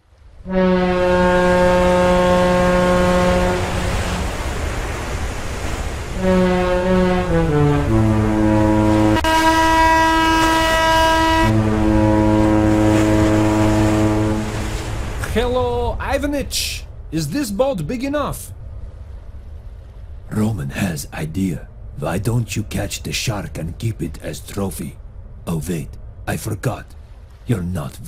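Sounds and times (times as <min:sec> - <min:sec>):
ship's horn blasts: 0:00.3 - 0:15.2.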